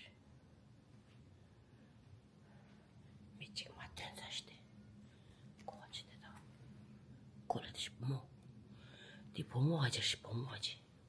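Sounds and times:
person whispering: 0:00.0 - 0:00.2, 0:03.4 - 0:04.8, 0:05.6 - 0:06.6, 0:07.5 - 0:08.3, 0:09.3 - 0:10.9.

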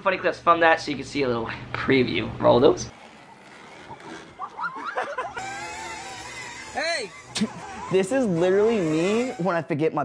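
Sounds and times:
girls yelling and squealing: 0:04.4 - 0:09.3.

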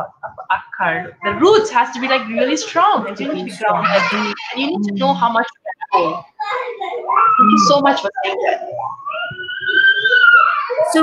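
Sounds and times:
young child squealing: 0:07.0 - 0:08.0, 0:08.8 - 0:11.0.

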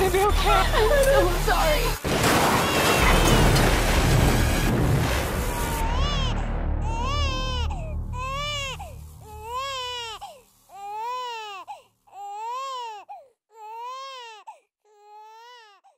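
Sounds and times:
deep low rumble: 0:03.0 - 0:10.2
infant crying: 0:05.8 - 0:15.9.

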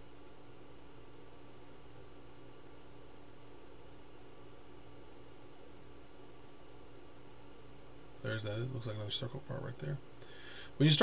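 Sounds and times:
faint electrical hum: 0:00.0 - 0:11.0
steady low hiss: 0:00.0 - 0:11.0.

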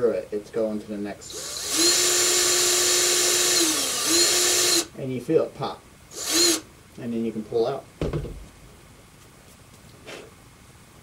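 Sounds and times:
dull thump: 0:08.0 - 0:08.5.

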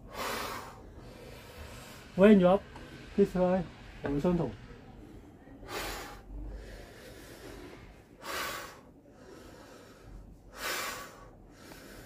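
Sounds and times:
man breathing out forcefully: 0:00.0 - 0:02.2, 0:05.6 - 0:12.0.

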